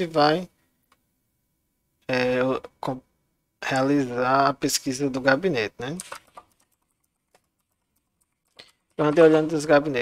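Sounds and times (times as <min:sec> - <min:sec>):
keyboard typing: 0:06.0 - 0:09.3.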